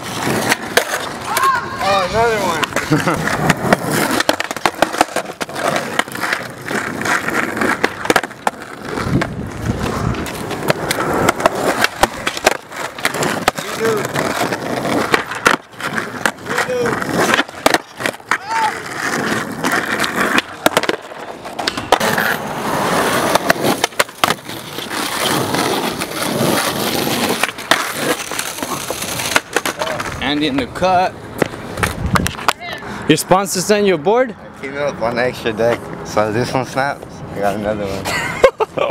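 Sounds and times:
skateboard clacks: 0.0 - 32.8
skateboard wheels rolling on asphalt: 0.0 - 38.9.

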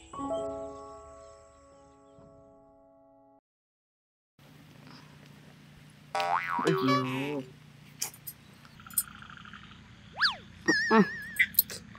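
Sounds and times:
whistle sweeping up and down: 10.1 - 10.4
cartoon fluttering trill: 10.1 - 11.6.

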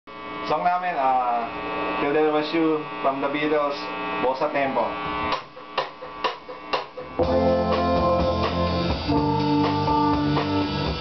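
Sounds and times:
electrical hum and buzz: 0.1 - 11.0
man talking: 0.5 - 5.0.

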